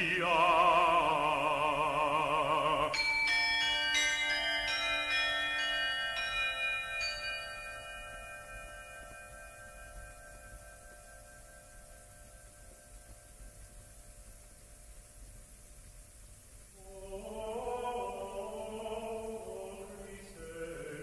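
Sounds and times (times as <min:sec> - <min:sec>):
tuned bells ringing: 0:02.7 - 0:13.1.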